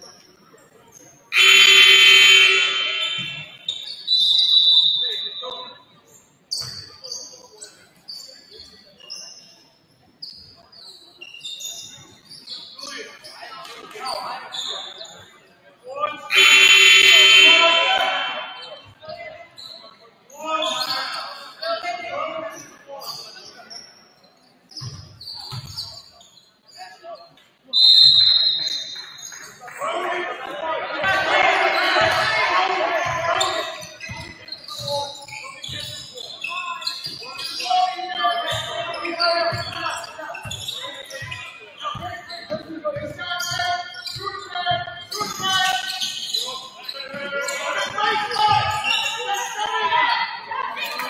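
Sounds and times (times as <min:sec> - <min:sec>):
chatter in a hall: 0:00.0 - 0:51.0
scoreboard horn blasts: 0:01.4 - 0:03.6, 0:16.3 - 0:18.5.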